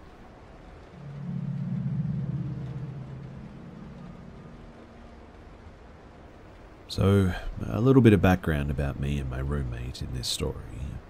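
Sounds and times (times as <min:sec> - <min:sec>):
low droning tone: 0:00.8 - 0:06.2.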